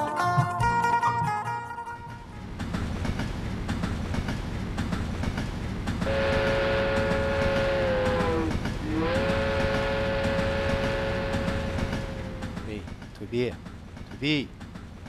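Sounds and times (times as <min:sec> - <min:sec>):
train rumbling: 0:01.2 - 0:15.0
train horn blast: 0:06.0 - 0:12.7.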